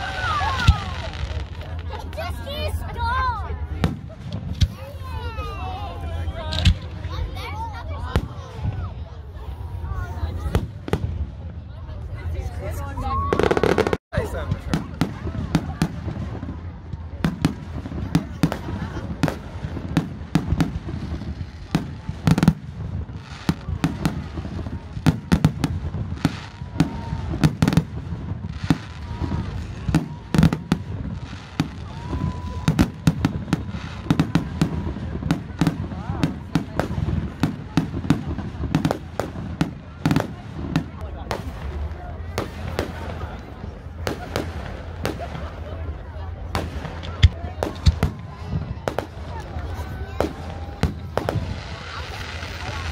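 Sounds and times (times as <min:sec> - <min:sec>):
fireworks bangs: 0:00.0 - 0:52.9.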